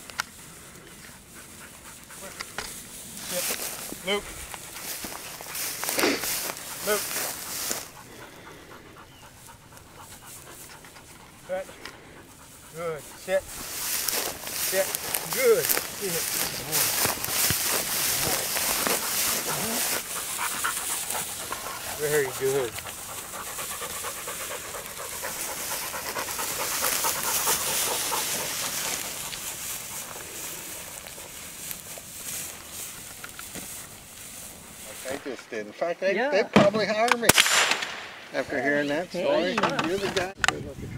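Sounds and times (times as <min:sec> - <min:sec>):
dog panting: 0:00.4 - 0:35.3.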